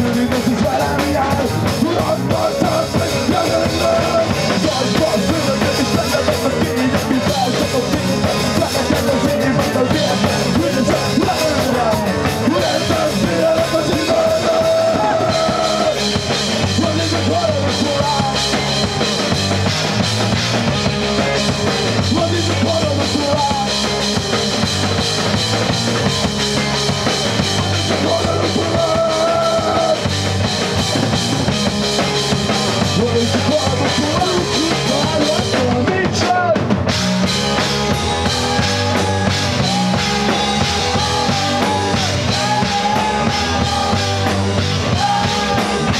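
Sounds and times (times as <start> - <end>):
drum kit beat: 0.0 - 45.9
live rock band playing: 0.0 - 45.9.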